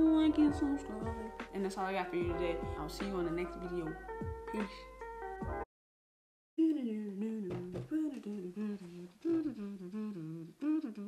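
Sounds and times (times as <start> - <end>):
woman humming a tune: 6.6 - 11.0.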